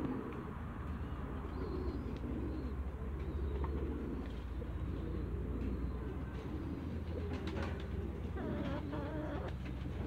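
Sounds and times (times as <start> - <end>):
ducks making soft calls: 7.7 - 10.0.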